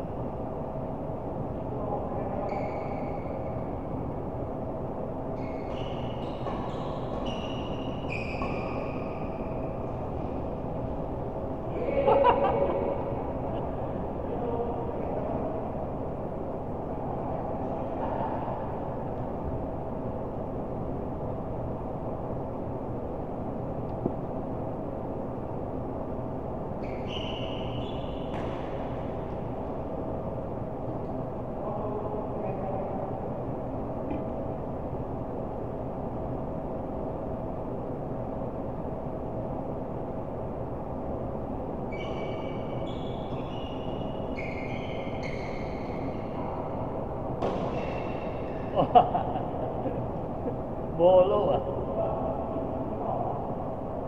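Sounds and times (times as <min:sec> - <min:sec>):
rumbling indoor hall noise: 0:00.0 - 0:54.0.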